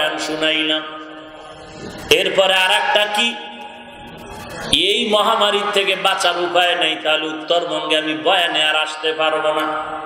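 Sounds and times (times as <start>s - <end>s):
man preaching in sing-song chant: 0.0s - 1.1s, 2.1s - 3.9s, 4.8s - 10.0s.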